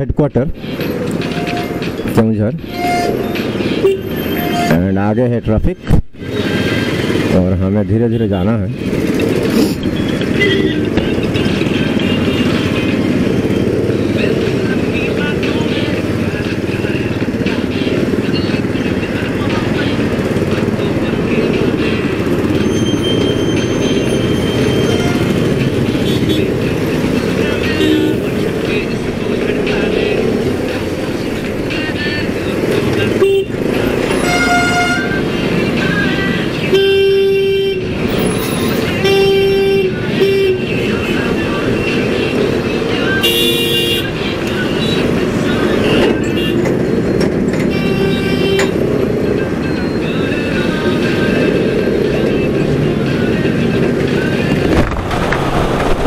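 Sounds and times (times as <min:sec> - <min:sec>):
motorcycle and traffic engines rumbling: 0:00.0 - 0:56.0
vehicle horns honking: 0:01.3 - 0:02.0, 0:02.6 - 0:04.8, 0:10.3 - 0:11.2, 0:22.3 - 0:28.9, 0:33.0 - 0:35.4, 0:36.6 - 0:41.2, 0:43.1 - 0:44.2, 0:45.8 - 0:49.0.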